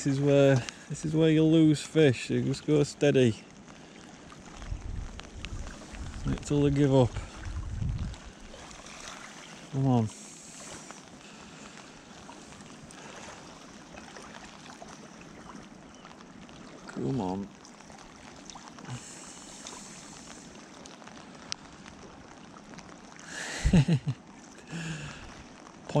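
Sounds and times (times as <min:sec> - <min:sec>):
water lapping at shore: 0:00.0 - 0:26.0
wind: 0:00.0 - 0:26.0.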